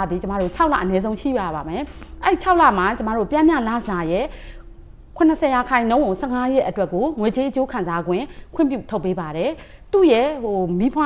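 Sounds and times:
woman talking: 0.0s - 4.5s, 5.2s - 11.0s.

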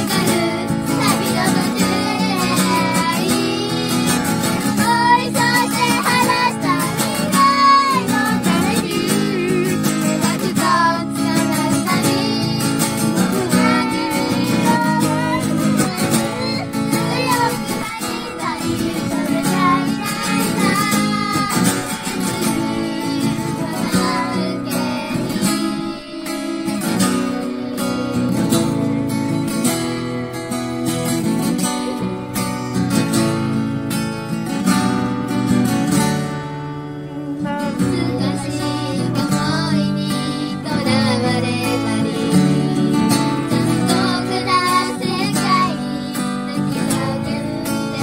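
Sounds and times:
girl singing: 0.0s - 30.1s, 36.9s - 48.0s
strummed acoustic guitar: 0.0s - 48.0s.

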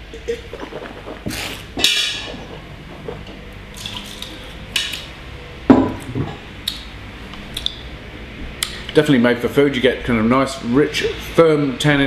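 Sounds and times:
wine slurping in mouth: 0.1s - 4.6s.

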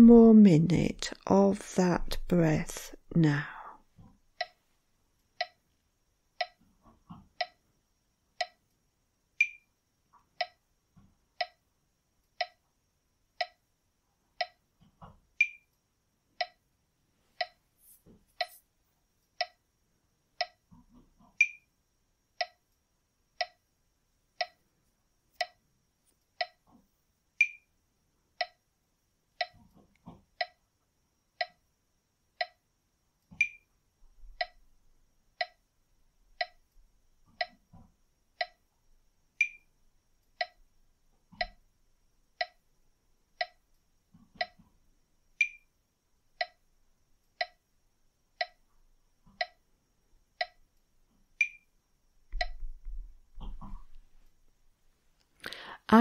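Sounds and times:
metronome ticking: 4.4s - 4.6s, 5.4s - 5.6s, 6.4s - 6.6s, 7.4s - 7.6s, 8.4s - 8.6s, 9.4s - 9.7s, 10.4s - 10.6s, 11.4s - 11.6s, 12.4s - 12.6s, 13.4s - 13.6s, 14.4s - 14.6s, 15.4s - 15.7s, 16.4s - 16.6s, 17.4s - 17.6s, 19.4s - 19.6s, 20.4s - 20.6s, 21.4s - 21.7s, 22.4s - 22.6s, 23.4s - 23.6s, 24.4s - 24.7s, 25.4s - 25.6s, 26.4s - 26.6s, 27.4s - 27.7s, 28.4s - 28.6s, 29.4s - 29.6s, 30.4s - 30.6s, 31.4s - 31.6s, 32.4s - 32.6s, 33.4s - 33.7s, 34.3s - 34.6s, 35.4s - 35.6s, 36.4s - 36.7s, 37.4s - 37.6s, 38.4s - 38.6s, 39.4s - 39.7s, 40.4s - 40.7s, 41.4s - 41.6s, 42.4s - 42.7s, 43.4s - 43.7s, 44.4s - 44.6s, 45.4s - 45.7s, 46.4s - 46.6s, 47.4s - 47.6s, 48.4s - 48.6s, 49.4s - 49.6s, 50.4s - 50.6s, 51.4s - 51.7s, 52.3s - 53.0s.

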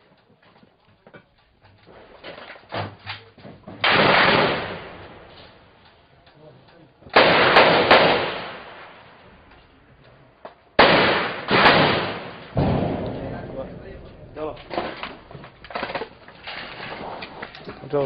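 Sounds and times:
echoing gunshots: 3.8s - 5.6s, 7.1s - 9.2s, 10.8s - 15.6s.

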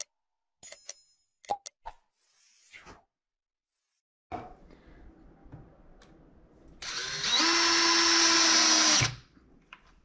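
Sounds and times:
cordless drill whine: 6.8s - 9.2s.

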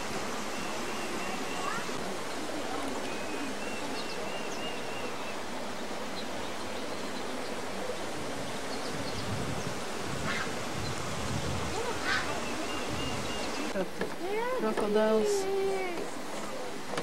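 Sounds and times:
steady outdoor hiss: 0.0s - 17.0s.

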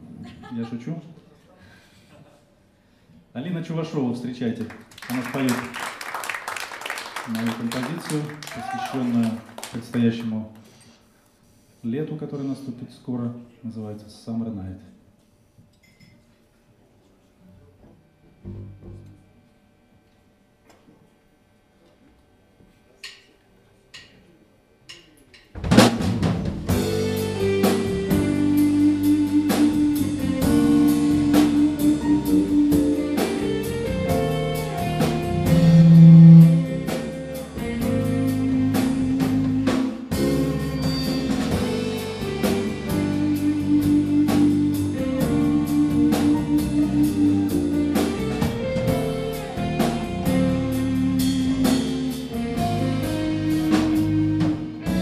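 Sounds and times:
bass guitar: 18.4s - 19.2s, 25.7s - 55.0s
drum kit: 25.4s - 55.0s
keyboard: 26.6s - 55.0s.

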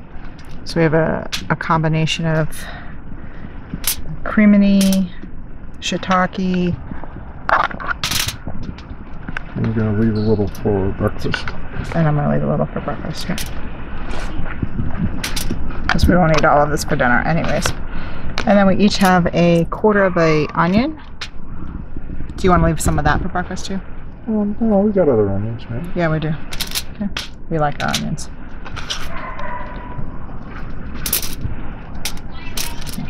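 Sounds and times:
low rumble: 0.0s - 33.0s.

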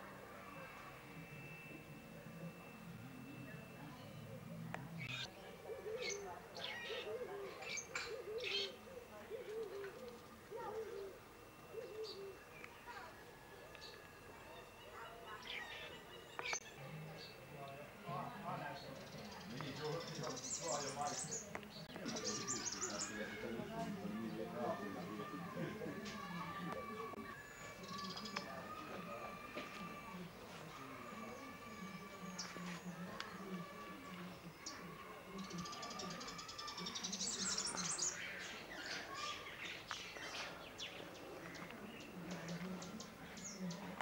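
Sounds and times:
faint steady high tone: 0.0s - 42.0s
birds chirping: 0.0s - 44.0s
dove cooing: 3.3s - 16.0s.

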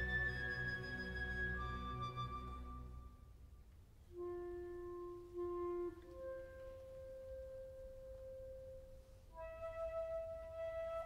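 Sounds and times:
soft woodwind note: 4.0s - 11.0s.

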